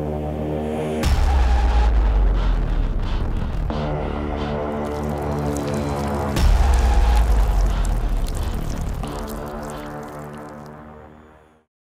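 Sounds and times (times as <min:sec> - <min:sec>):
background music with sustained tones: 0:00.0 - 0:11.7.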